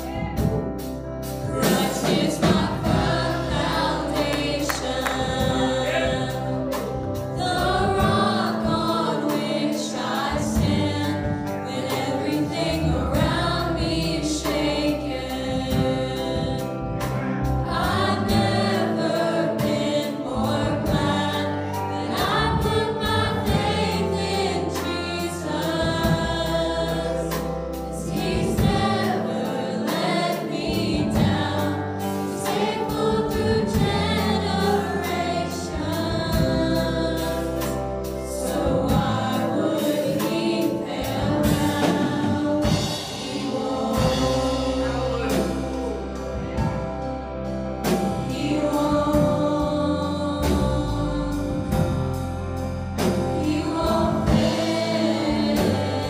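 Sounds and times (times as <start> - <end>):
bass line: 0.0 - 56.0
choir singing worship song: 0.0 - 56.0
drums: 0.0 - 56.0.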